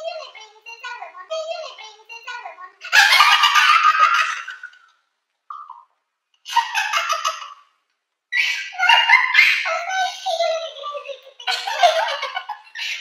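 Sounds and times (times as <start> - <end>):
girls laughing hard: 2.8 - 4.9, 6.5 - 7.7, 8.3 - 13.0.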